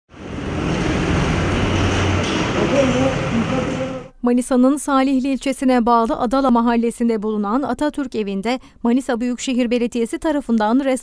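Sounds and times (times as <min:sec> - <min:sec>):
street noise rumble: 0:00.1 - 0:04.1.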